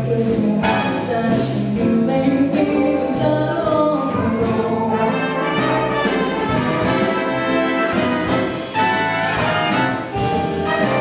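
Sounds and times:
woman singing: 0.0 - 5.4
jazz big band playing: 0.0 - 11.0.

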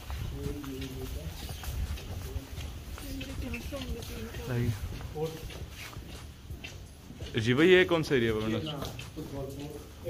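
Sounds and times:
faint voices: 0.0 - 10.0
footsteps on hard floor: 0.0 - 10.0.

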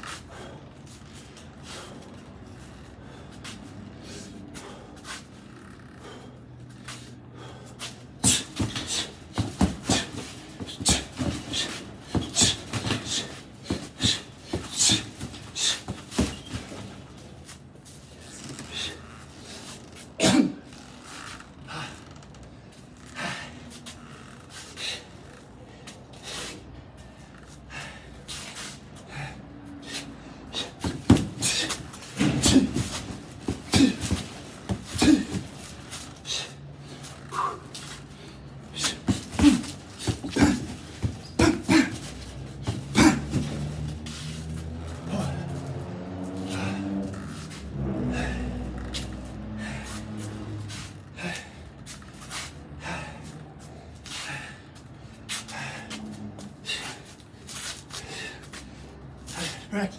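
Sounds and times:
sharp breaths: 0.0 - 59.9
gloved punches on heavy bag: 8.2 - 16.9, 30.8 - 35.6, 38.8 - 43.7.

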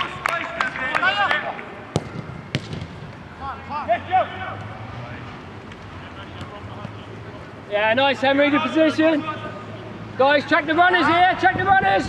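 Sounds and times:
players shouting: 0.0 - 2.2, 3.3 - 4.9, 6.0 - 12.0
football being kicked: 1.9 - 3.0.

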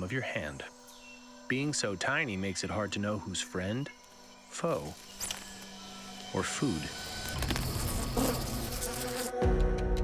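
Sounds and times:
flying insect buzzing: 0.0 - 9.6.

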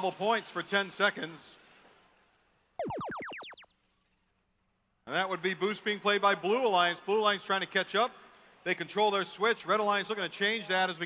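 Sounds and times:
rising electronic sweeps: 2.8 - 3.7.

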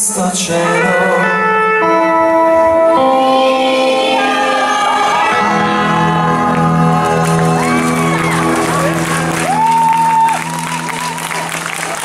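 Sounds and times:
pop band sustained chord: 0.1 - 10.5
audience whooping and cheering: 4.2 - 12.0.

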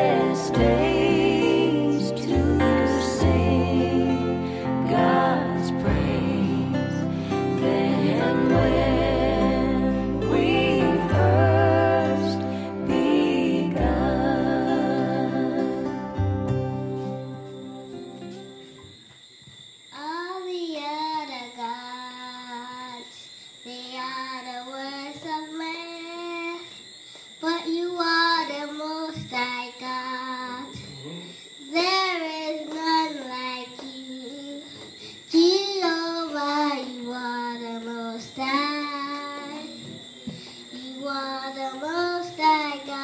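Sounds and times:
girl singing into microphone: 0.0 - 15.9, 27.4 - 30.9, 31.7 - 40.0, 40.8 - 43.0.

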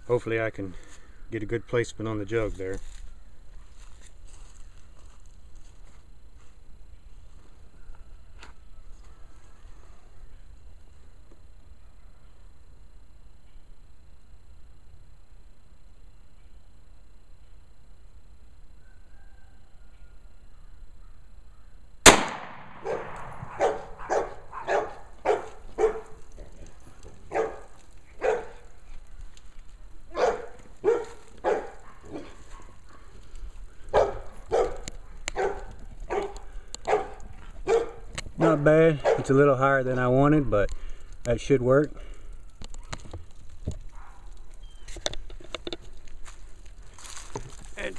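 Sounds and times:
pistol shot: 22.0 - 24.2.

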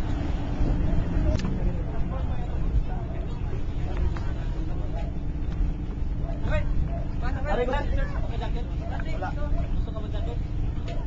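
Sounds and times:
indistinct voices talking: 0.0 - 11.0
steady low rumble: 0.0 - 11.0.

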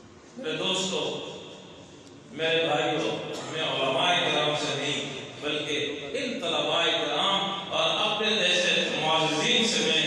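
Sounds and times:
man speaking in intoned style: 2.3 - 10.0.

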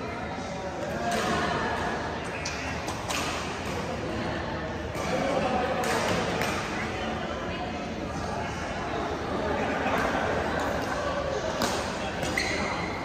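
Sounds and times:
voices echoing in hall: 0.0 - 13.0.

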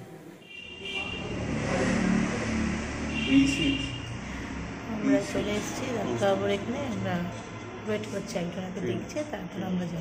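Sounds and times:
vehicle engine and road noise: 0.4 - 10.0.

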